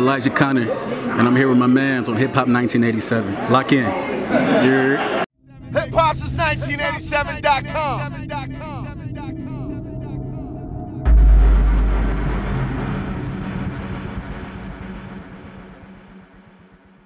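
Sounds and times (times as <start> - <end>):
deep boom with rumbling tail: 11.1 - 17.0.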